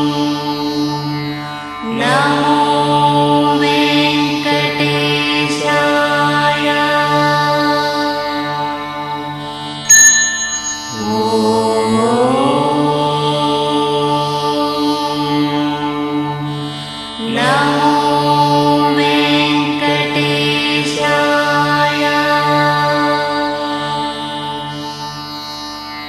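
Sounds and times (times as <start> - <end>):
long held notes over a drone: 0.0 - 25.9
bright ringing strike: 9.9 - 12.0.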